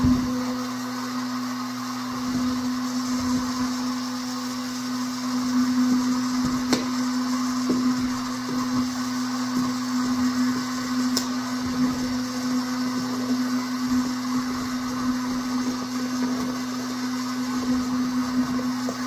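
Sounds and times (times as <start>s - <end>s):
heat gun running: 0.0s - 19.0s.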